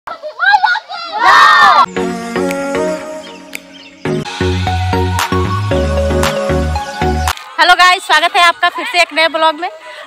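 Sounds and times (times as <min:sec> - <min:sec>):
children shouting and cheering: 0:00.1 - 0:02.0.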